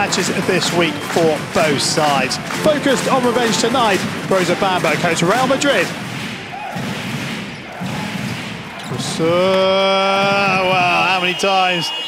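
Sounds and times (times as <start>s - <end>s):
arena crowd noise: 0.0s - 12.0s
basketball bouncing on hardwood: 10.2s - 11.2s.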